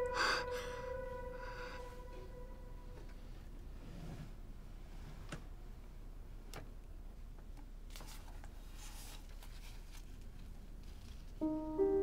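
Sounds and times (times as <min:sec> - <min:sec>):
low room hiss: 0:00.0 - 0:12.0.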